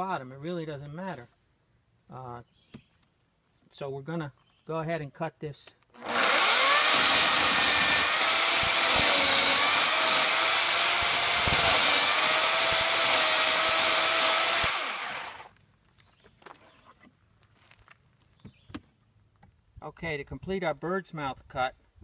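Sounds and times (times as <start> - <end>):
electric chainsaw cutting wood: 6.0 - 15.5.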